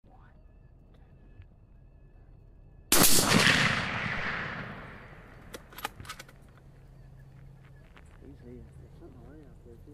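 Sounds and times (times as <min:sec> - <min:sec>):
rifle shot echoing: 0:02.9 - 0:06.2.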